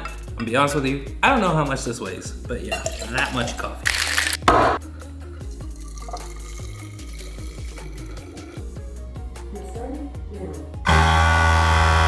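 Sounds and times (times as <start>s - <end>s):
background music with bass: 0.0s - 12.0s
liquid pouring into steel canister: 5.4s - 8.8s.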